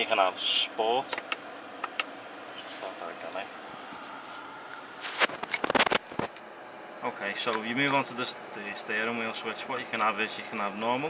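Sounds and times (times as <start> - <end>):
microphone handling noise: 5.0 - 6.4.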